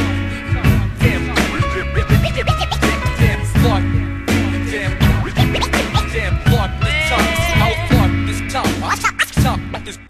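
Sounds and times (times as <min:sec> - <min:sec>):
hip hop drum beat and bass: 0:00.0 - 0:10.0
turntable scratching: 0:01.1 - 0:03.3, 0:05.1 - 0:06.3, 0:08.7 - 0:09.6.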